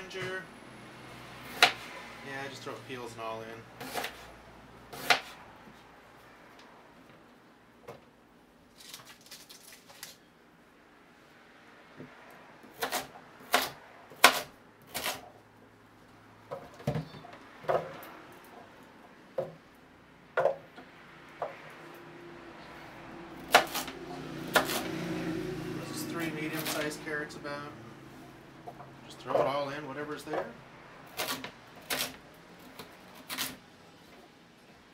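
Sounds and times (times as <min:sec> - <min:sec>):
knife chopping on wooden board: 0:01.5 - 0:01.9, 0:03.8 - 0:04.3, 0:04.9 - 0:05.4, 0:12.7 - 0:15.2, 0:23.4 - 0:24.9.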